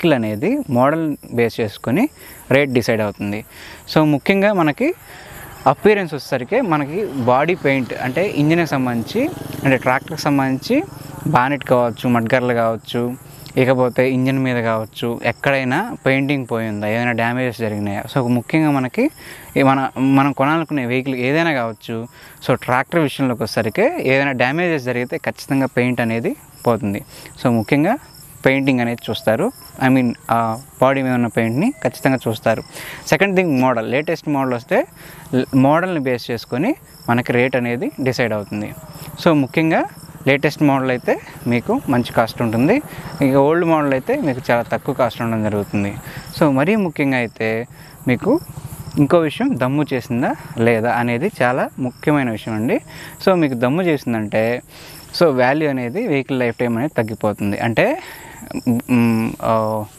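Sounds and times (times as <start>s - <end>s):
man talking: 0.0s - 48.4s, 49.0s - 59.9s
crickets chirping: 0.0s - 59.9s.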